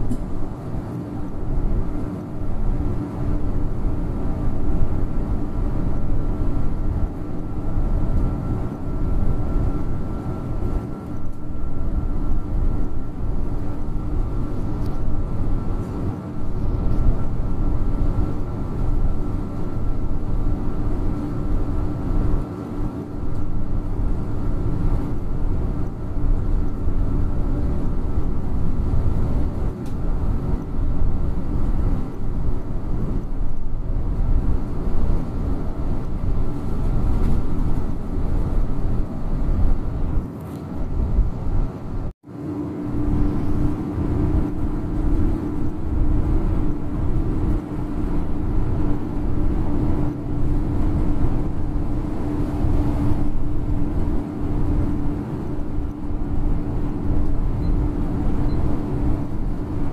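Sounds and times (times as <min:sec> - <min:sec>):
bus engine drone: 0:00.0 - 0:59.9.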